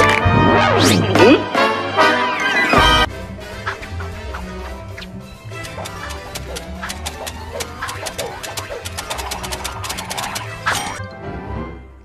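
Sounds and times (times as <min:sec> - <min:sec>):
orchestral cartoon music: 0:00.0 - 0:12.0
adding machine keys clacking: 0:05.6 - 0:10.4.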